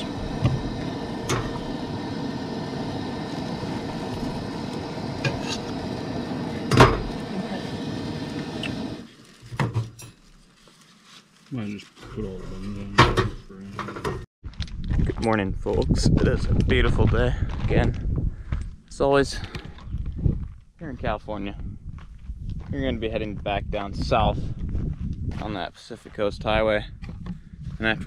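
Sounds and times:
camp stove burner hissing: 0:00.0 - 0:09.2.

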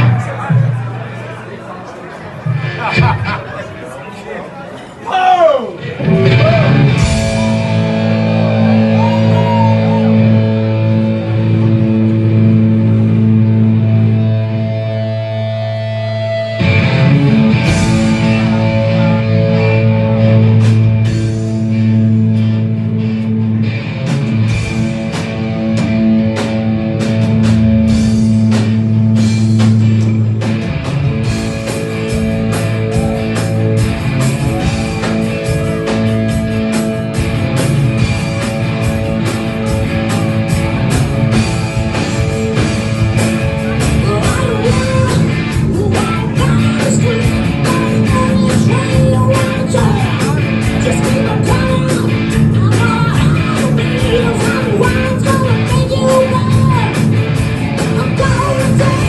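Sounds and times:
electric guitar chords: 0:05.8 - 0:59.0.

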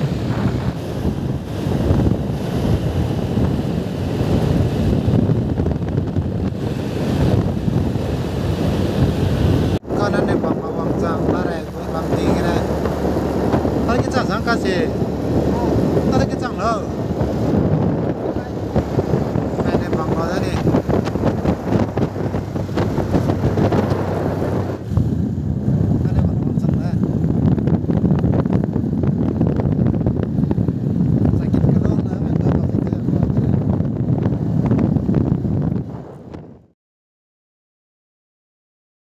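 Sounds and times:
motorbike running: 0:00.0 - 0:36.4
wind rushing over microphone: 0:00.0 - 0:36.8.

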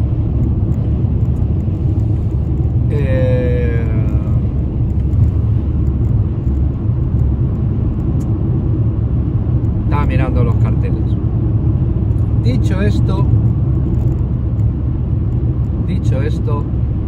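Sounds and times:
car cabin road and engine rumble: 0:00.0 - 0:17.0.

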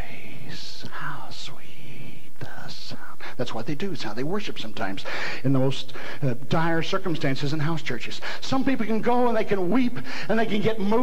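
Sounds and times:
man whispering: 0:00.0 - 0:06.5.

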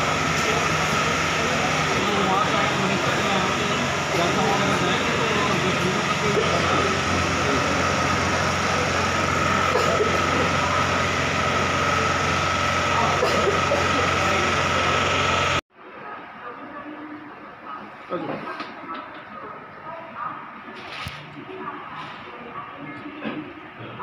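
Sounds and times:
engine hum: 0:00.0 - 0:15.6
high whine: 0:00.0 - 0:15.6
crowd chattering: 0:00.0 - 0:24.0.

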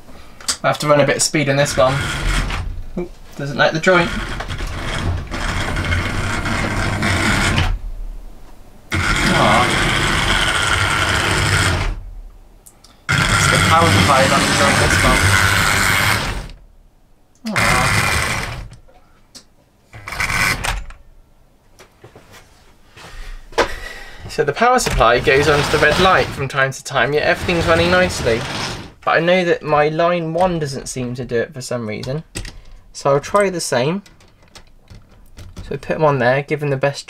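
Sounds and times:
model train wheels rumbling: 0:01.1 - 0:02.8, 0:03.4 - 0:07.8, 0:08.9 - 0:12.0, 0:13.1 - 0:16.6, 0:17.6 - 0:18.7, 0:24.8 - 0:29.0
model train motors whirring: 0:01.6 - 0:02.7, 0:03.8 - 0:07.8, 0:08.9 - 0:12.0, 0:13.1 - 0:16.6, 0:17.5 - 0:18.8, 0:20.0 - 0:20.8, 0:24.9 - 0:26.4, 0:27.2 - 0:29.0.

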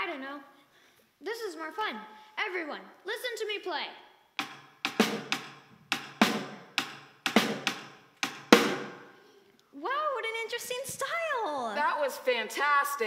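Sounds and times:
hand drum struck with sticks: 0:04.4 - 0:09.0.

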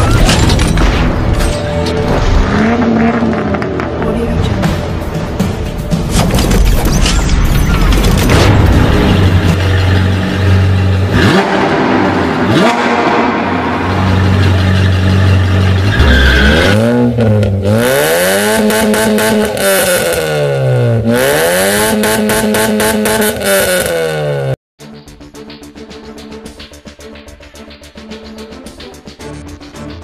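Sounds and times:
sports car engine idling and revving: 0:02.4 - 0:06.2, 0:08.8 - 0:24.6.

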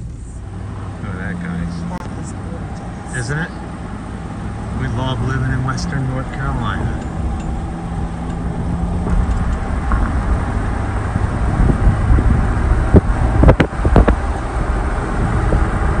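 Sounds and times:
vehicle cabin road rumble: 0:00.0 - 0:16.0.

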